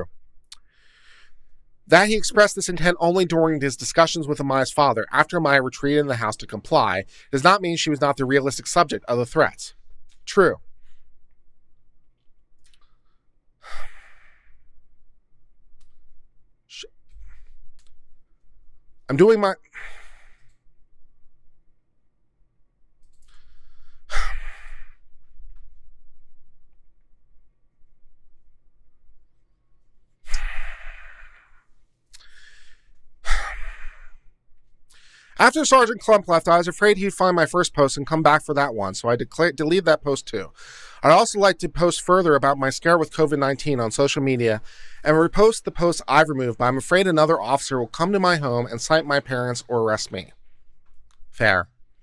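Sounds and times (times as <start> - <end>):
quick breath in: 0.6 - 1.4, 12.9 - 14.7, 19.7 - 20.5, 30.3 - 34.3, 40.6 - 41.0
man sighing heavily: 30.3 - 31.4.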